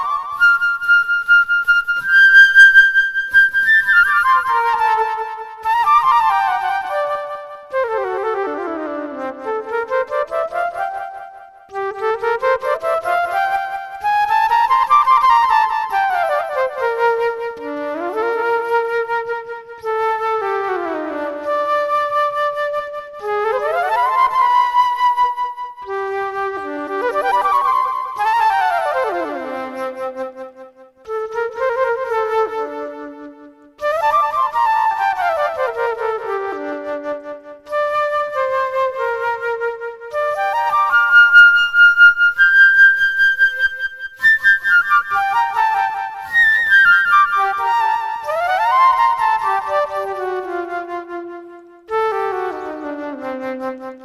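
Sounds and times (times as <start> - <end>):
solo flute playing: 0.0 - 54.0.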